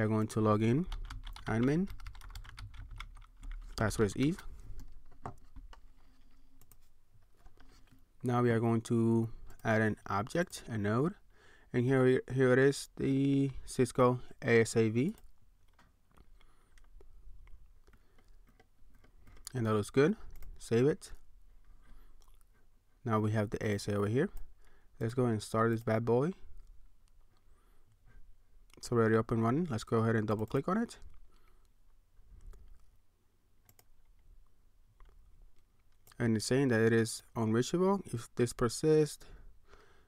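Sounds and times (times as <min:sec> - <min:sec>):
faint low room hum: 0:00.0 - 0:40.0
computer mouse clicks: 0:33.6 - 0:33.9.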